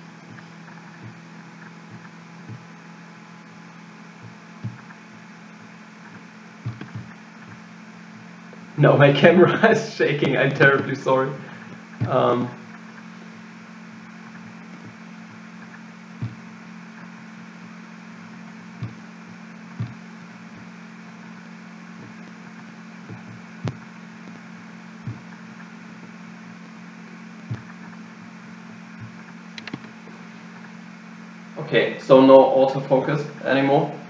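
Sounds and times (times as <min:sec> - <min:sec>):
microphone hum and hiss: 0:00.0 - 0:34.0.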